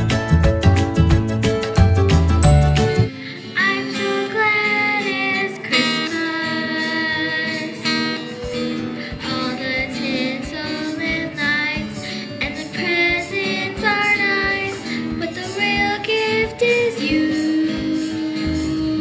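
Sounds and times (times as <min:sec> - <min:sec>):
plucked string accompaniment: 0:00.0 - 0:19.0
girl singing into a microphone: 0:03.1 - 0:19.0.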